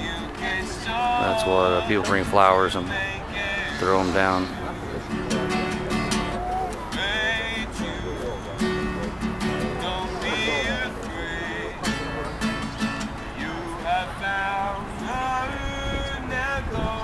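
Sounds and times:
acoustic guitar strumming: 0.0 - 17.0
voices: 0.0 - 17.0.

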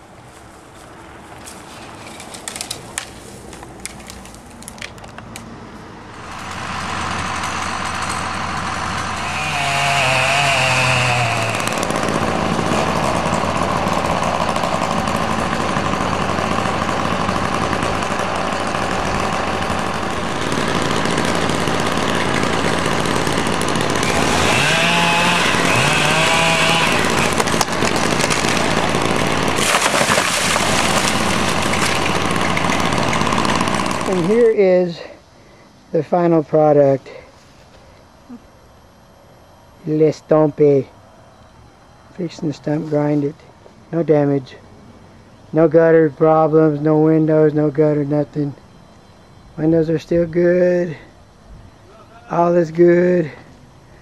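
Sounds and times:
chainsaw cutting at high revs: 6.1 - 34.6.

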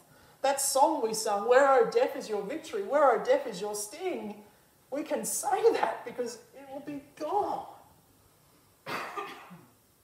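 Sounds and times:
person coughing: 8.9 - 9.7.

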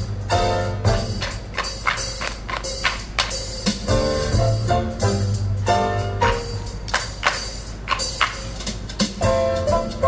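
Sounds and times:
thin backing music: 0.0 - 10.0
clogs clacking on stage floor: 1.0 - 3.8, 6.8 - 9.0.

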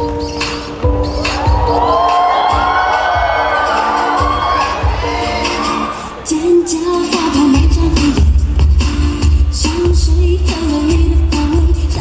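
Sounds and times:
dance music with steady beat: 0.0 - 12.0
audience cheering and shrieking: 0.7 - 7.7.

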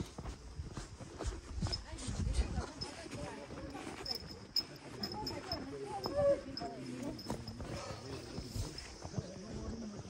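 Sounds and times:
footsteps on dirt trail: 0.0 - 10.0
faint voices: 0.2 - 10.0.

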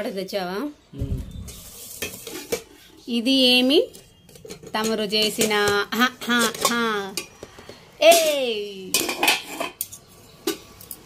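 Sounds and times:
spoon scraping metal pan: 1.5 - 3.0, 3.8 - 7.8.

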